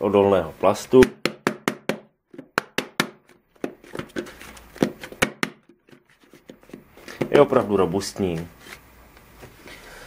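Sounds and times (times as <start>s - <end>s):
knocking on plastic box lid: 4.8s - 5.8s.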